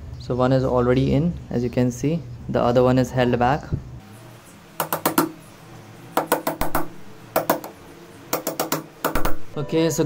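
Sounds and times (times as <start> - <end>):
sharp clicks and metallic knocks: 4.8 - 5.4, 6.2 - 9.5.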